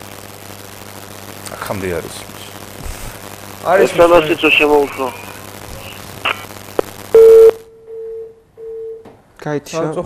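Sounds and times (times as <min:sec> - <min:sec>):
telephone line beep: 0:07.1 - 0:09.0.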